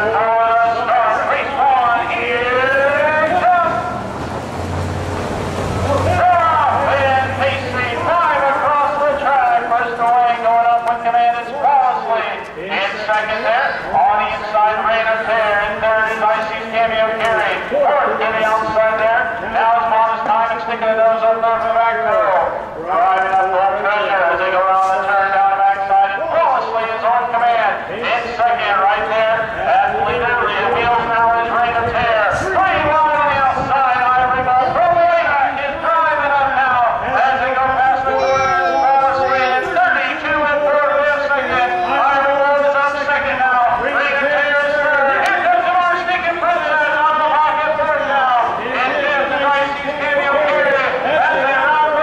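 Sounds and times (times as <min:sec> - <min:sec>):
race announcer over loudspeaker: 0:00.0 - 0:52.0.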